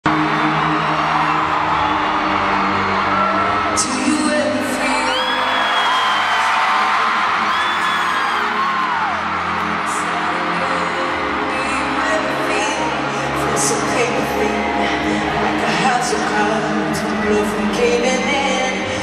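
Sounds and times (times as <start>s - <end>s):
arena crowd screaming and cheering: 0.0s - 19.0s
concert music with held chords: 0.0s - 19.0s.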